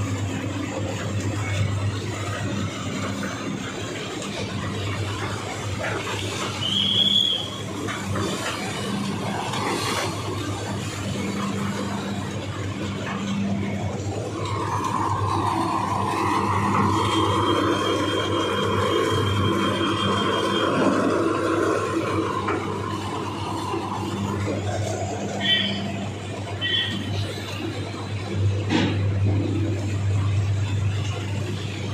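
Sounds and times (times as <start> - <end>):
mill machinery hum: 0.0 - 31.9
tractor engines idling: 2.8 - 27.7.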